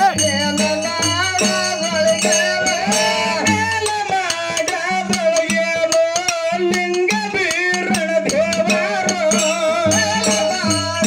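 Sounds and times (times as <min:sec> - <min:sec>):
man singing into a microphone: 0:00.0 - 0:11.0
rapid percussion strikes: 0:00.0 - 0:11.0
rattling jingle: 0:00.0 - 0:11.0.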